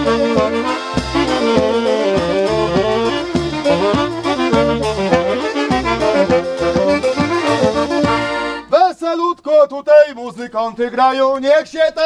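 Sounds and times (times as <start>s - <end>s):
accordion folk tune with bass beat: 0.0s - 8.8s
man's voice: 8.7s - 12.0s.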